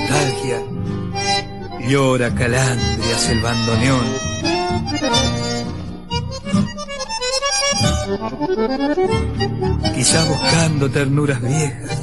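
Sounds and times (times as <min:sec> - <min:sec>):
accordion melody: 0:00.0 - 0:12.0
plucked bass: 0:00.0 - 0:12.0.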